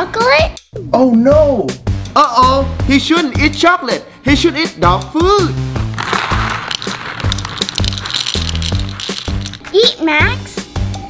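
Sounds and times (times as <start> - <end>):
background music: 0.0 - 11.0
dry kibble rattling into bowl: 5.9 - 9.8.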